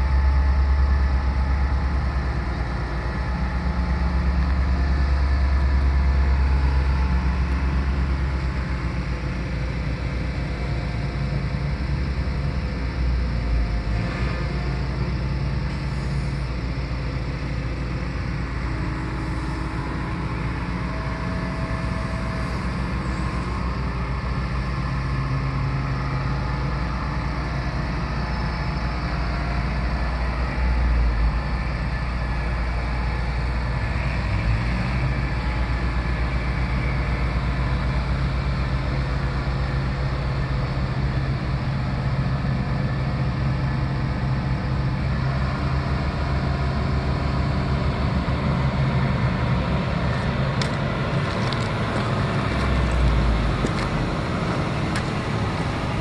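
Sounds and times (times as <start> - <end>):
diesel engine running: 0.0 - 56.0.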